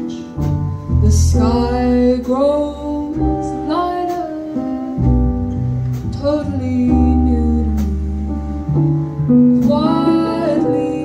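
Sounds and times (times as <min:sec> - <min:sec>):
woman singing: 0:00.0 - 0:05.0, 0:06.1 - 0:08.7, 0:09.4 - 0:11.0
drum kit with light cymbals: 0:00.0 - 0:11.0
piano: 0:00.0 - 0:11.0
upright double bass: 0:00.0 - 0:11.0.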